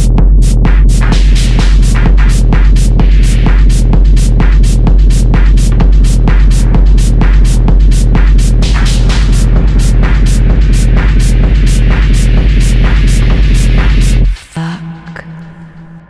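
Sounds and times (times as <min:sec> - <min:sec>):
deep techno bass: 0:00.0 - 0:16.0.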